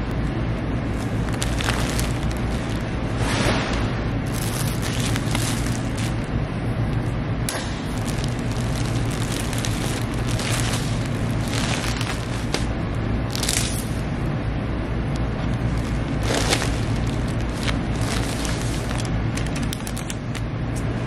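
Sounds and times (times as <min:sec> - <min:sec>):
steady low hum: 0:00.0 - 0:21.0
plastic crinkling and rustling: 0:00.9 - 0:06.3, 0:07.5 - 0:14.0, 0:15.4 - 0:20.4.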